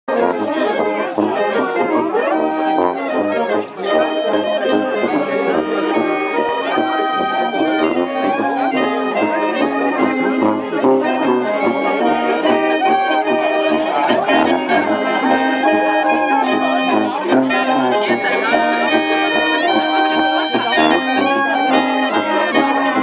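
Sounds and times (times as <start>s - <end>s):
brass band playing folk tune: 0.1s - 23.0s.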